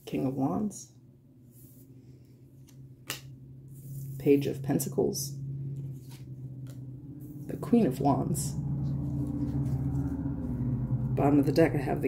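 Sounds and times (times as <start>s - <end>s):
steady low-pitched hum: 0.0s - 12.0s.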